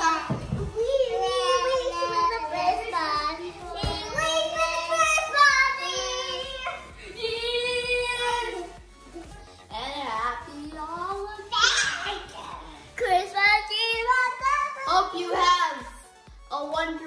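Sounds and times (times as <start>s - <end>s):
children singing wordless melody: 0.0s - 9.2s.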